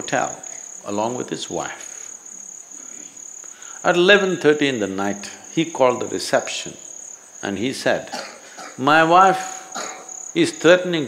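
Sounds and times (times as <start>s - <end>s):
man speaking: 0.0s - 2.0s, 3.8s - 6.8s, 7.4s - 8.2s, 8.8s - 9.7s, 10.4s - 11.0s
crickets trilling: 0.0s - 11.0s.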